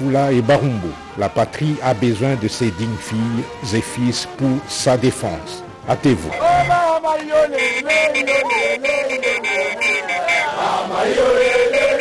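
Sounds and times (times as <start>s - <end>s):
voices chanting together: 7.6s - 12.0s.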